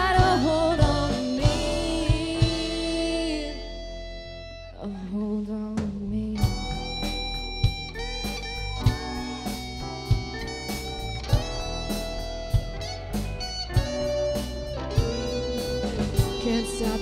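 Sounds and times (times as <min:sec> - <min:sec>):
drum hits: 0:00.0 - 0:03.0, 0:06.4 - 0:17.0
live rock band playing: 0:00.0 - 0:04.6, 0:06.4 - 0:17.0
held electric guitar notes: 0:06.5 - 0:17.0.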